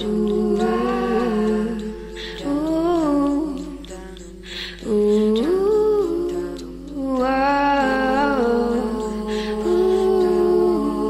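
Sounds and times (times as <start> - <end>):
person humming slow melody: 0.0 - 11.0.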